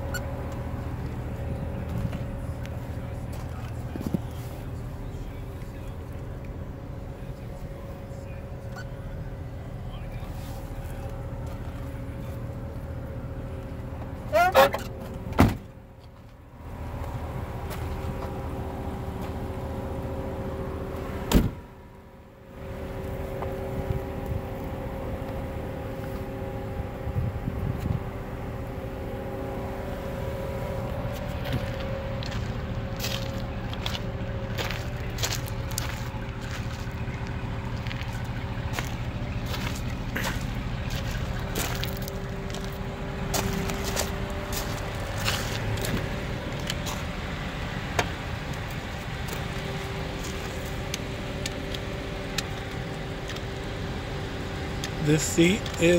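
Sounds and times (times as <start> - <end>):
car engine idling: 0.0 - 55.9.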